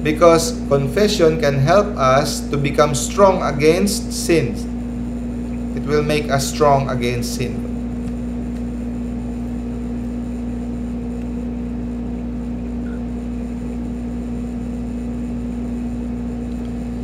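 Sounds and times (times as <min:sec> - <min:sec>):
machine hum with low rumble: 0:00.0 - 0:17.0.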